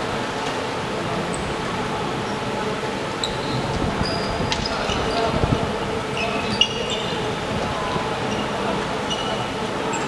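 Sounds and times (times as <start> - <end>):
murmur of people in a sports hall: 0.0 - 10.0
high squeak: 8.3 - 10.0.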